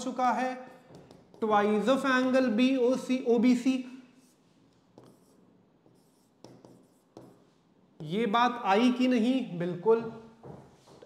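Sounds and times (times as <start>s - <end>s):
pen tapping and scratching on screen: 0.7s - 1.6s, 4.2s - 8.2s.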